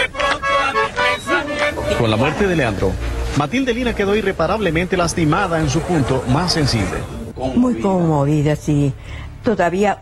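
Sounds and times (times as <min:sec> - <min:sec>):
accordion playing: 0:00.0 - 0:05.8.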